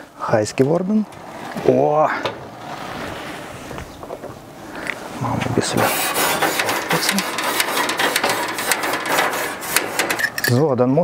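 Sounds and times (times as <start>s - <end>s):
grill brush scraping metal grate: 5.4s - 10.6s.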